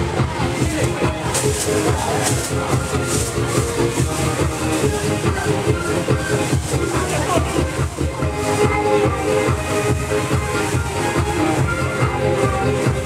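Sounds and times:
electronic dance music: 0:00.0 - 0:13.0.

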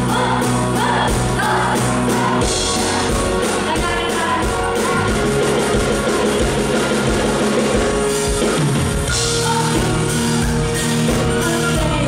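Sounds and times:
drum kit: 0:00.0 - 0:12.0
electric guitar: 0:00.0 - 0:12.0.

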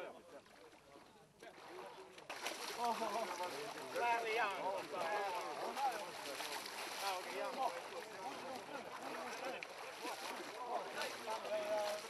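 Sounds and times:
distant people talking: 0:00.0 - 0:12.0
legs wading through water: 0:00.3 - 0:12.0.

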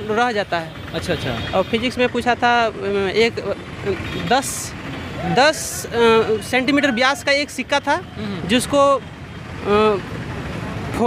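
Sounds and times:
road traffic rumble: 0:00.0 - 0:11.0
man's drawn-out syllable: 0:08.1 - 0:08.6.

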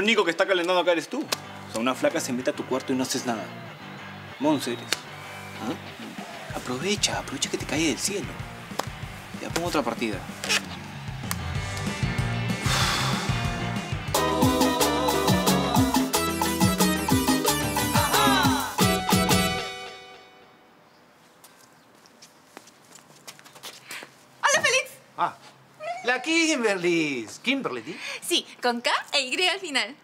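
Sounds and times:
soft background music: 0:00.0 - 0:20.7.

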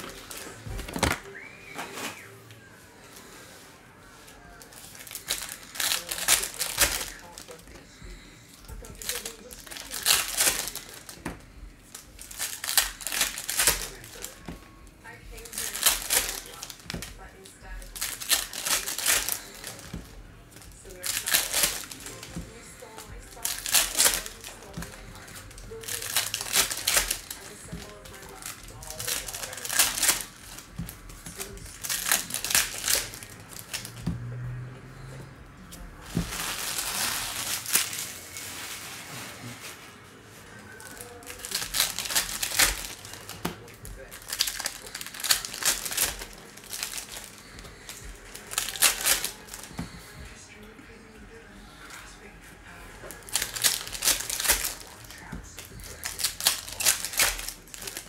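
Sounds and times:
foil wrappers tearing and crinkling: 0:00.0 - 0:02.3, 0:04.1 - 0:35.1, 0:36.0 - 0:50.4, 0:53.0 - 0:58.0.

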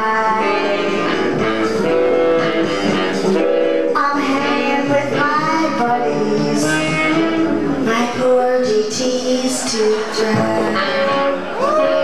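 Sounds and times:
woman singing into microphone: 0:00.0 - 0:02.2, 0:02.8 - 0:12.0
music: 0:00.0 - 0:12.0.

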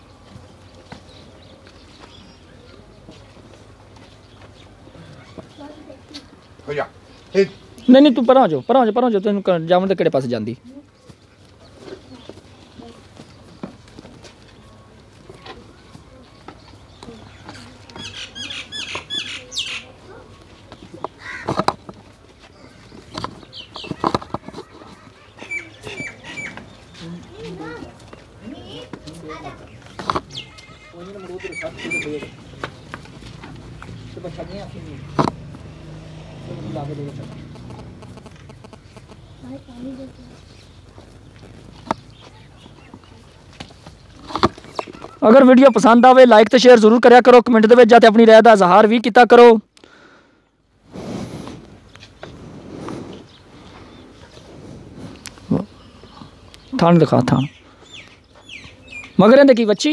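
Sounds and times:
farmyard background noise: 0:00.0 - 0:59.9
small birds chirping: 0:00.0 - 0:59.9
indistinct voices talking: 0:11.6 - 0:49.6, 0:50.8 - 0:59.9
low animal call: 0:35.0 - 0:40.4.

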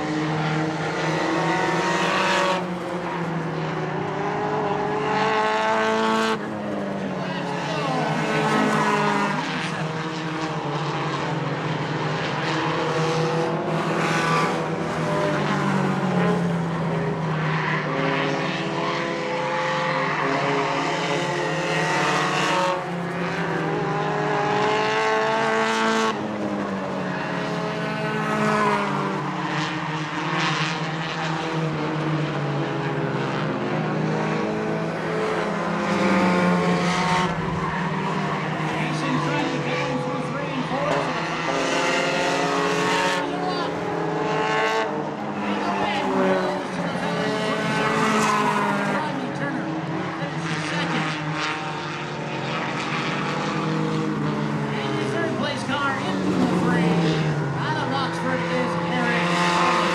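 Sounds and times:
stock car engines racing: 0:00.0 - 0:59.9.

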